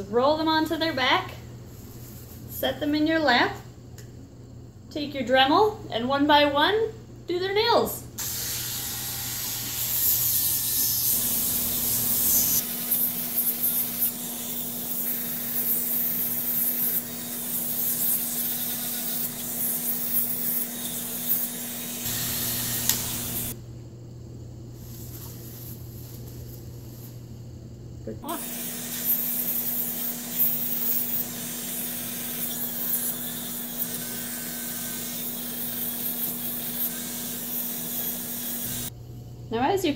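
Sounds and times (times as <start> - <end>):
rotary tool motor whine: 8.2 - 23.6, 28.3 - 38.9.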